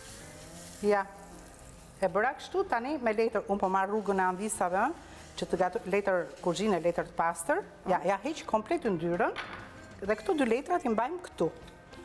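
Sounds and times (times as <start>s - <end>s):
batter sizzling in a frying pan: 0.0s - 9.1s.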